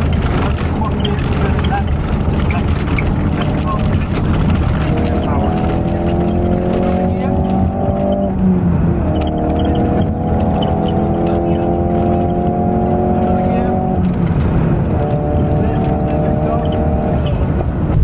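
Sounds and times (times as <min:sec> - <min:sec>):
car engine accelerating: 0:00.0 - 0:18.0.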